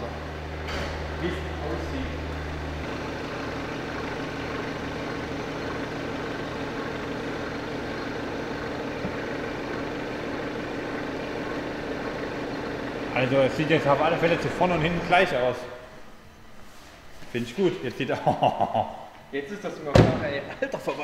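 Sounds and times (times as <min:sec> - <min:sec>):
heavy low drone: 0:00.0 - 0:06.3
car engine idling: 0:00.0 - 0:17.2.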